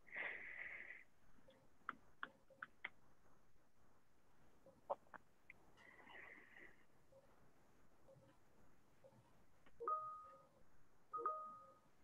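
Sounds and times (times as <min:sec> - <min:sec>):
telephone keypad beeps: 0:11.1 - 0:11.8.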